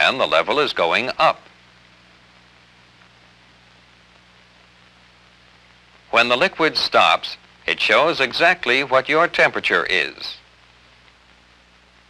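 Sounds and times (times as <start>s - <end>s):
faint low hum: 0.0s - 12.0s
film soundtrack hiss: 0.0s - 12.0s.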